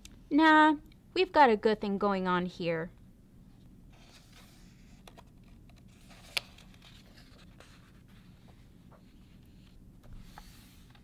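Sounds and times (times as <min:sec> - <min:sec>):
paper page turning: 0:03.9 - 0:11.0.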